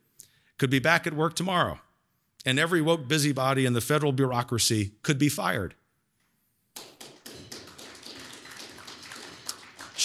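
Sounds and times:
audience applauding: 6.8 - 10.0.

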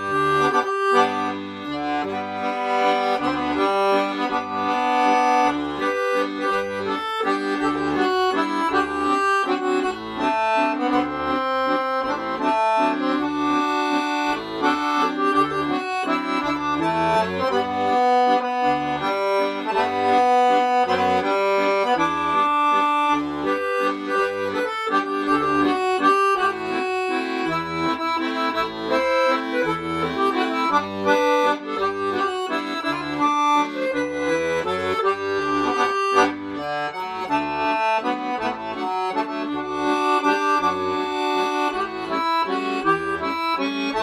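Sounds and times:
piano accordion playing a waltz: 0.0 - 44.0.

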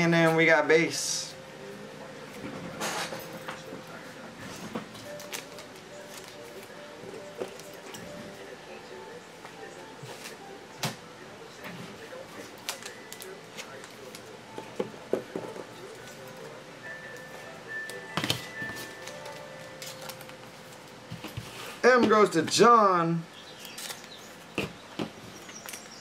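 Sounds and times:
faint steady background tones: 0.0 - 26.0.

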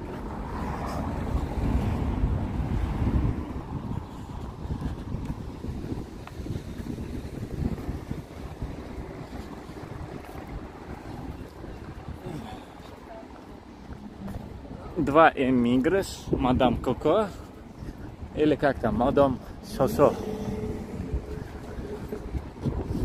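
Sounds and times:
wind buffeting microphone: 0.0 - 23.0
faint outdoor background: 8.0 - 23.0.

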